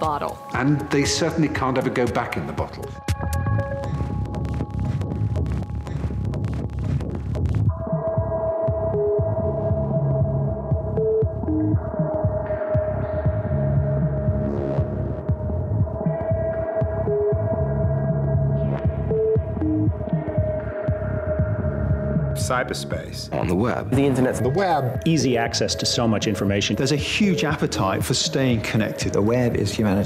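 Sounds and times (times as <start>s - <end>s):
low throbbing pulse: 2.9s - 26.1s.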